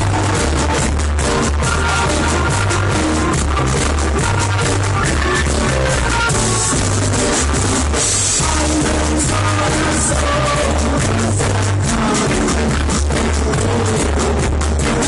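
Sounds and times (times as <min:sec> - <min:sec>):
deep bass line: 0:00.0 - 0:15.0
reggae band playing: 0:00.0 - 0:15.0.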